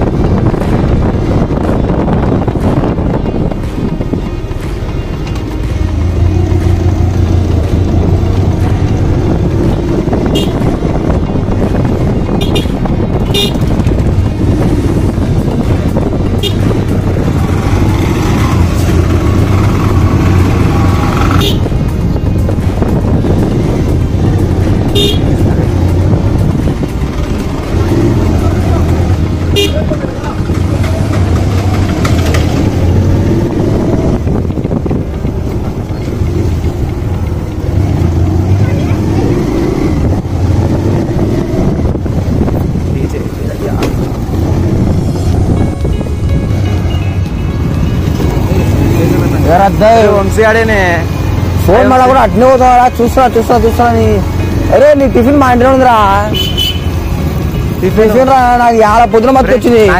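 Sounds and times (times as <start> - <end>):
motorcycle engine running: 0.0 - 59.9
road and wind noise: 0.0 - 59.9.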